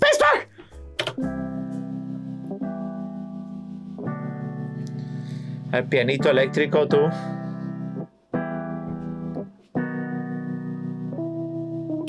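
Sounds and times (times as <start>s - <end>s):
electric piano chords: 0.7s - 12.0s.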